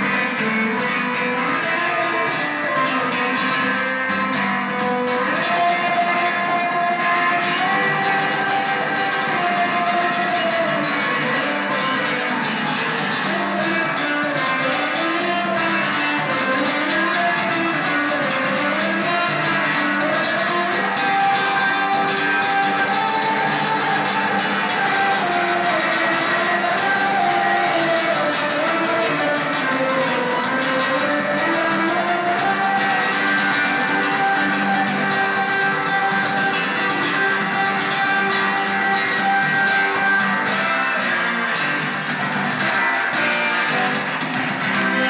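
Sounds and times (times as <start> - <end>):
electric guitar blues: 0.0 - 45.0
harmonica held notes: 0.0 - 45.0.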